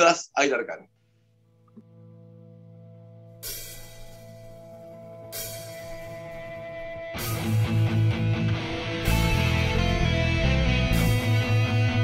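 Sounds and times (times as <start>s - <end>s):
held guitar chord: 1.9s - 12.0s
cymbal crashes: 3.4s - 9.9s.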